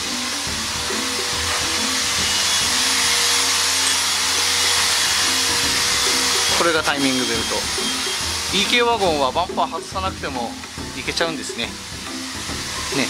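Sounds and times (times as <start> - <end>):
machine rushing hiss: 0.0 - 9.6
faint music: 0.0 - 13.0.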